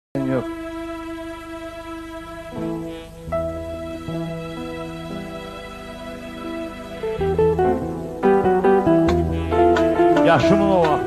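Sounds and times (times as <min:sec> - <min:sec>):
synthesizer long steady note: 0:00.2 - 0:08.3.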